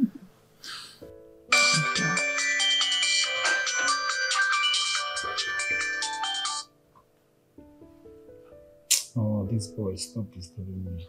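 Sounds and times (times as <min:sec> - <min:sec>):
phone ringtone tune: 0:01.5 - 0:06.7.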